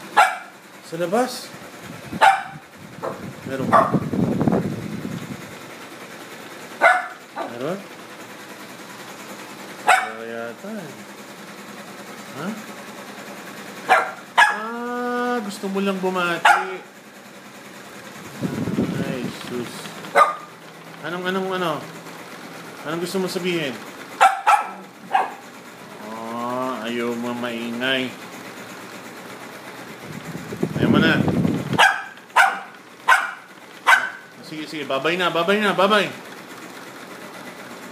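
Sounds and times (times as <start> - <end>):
dog barking sharply: 0.2 - 0.6, 2.2 - 4.0, 6.8 - 7.6, 9.8 - 10.2, 13.9 - 14.7, 16.4 - 16.9, 20.1 - 20.5, 24.2 - 25.4, 31.8 - 34.3.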